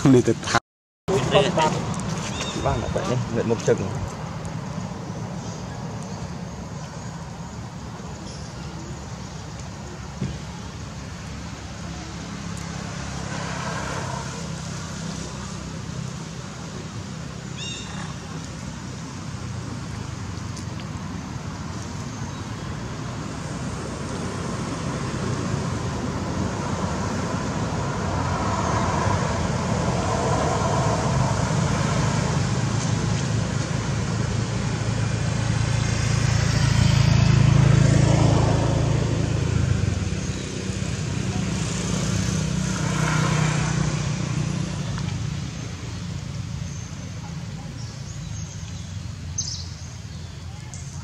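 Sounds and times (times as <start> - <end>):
vehicle engine rumbling past: 1.1 - 51.0.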